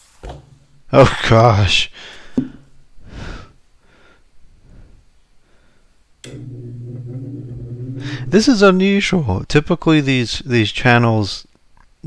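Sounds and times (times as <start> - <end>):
electric fan motor hum: 6.2 - 9.2.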